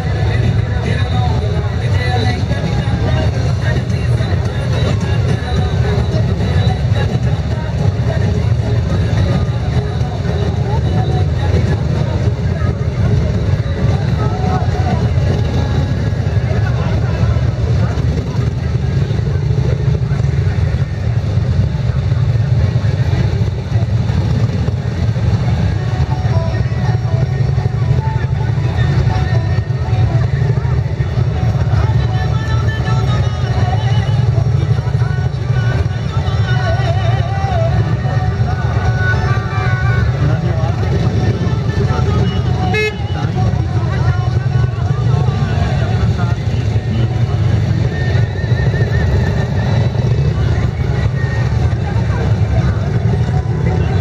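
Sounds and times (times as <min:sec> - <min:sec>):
crowd chatter: 0:00.0 - 0:54.0
motorcycles idling: 0:00.0 - 0:54.0.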